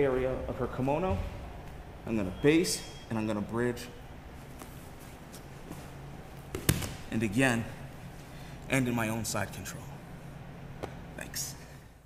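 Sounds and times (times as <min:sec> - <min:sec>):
people scuffling on a mat: 0:04.3 - 0:06.5.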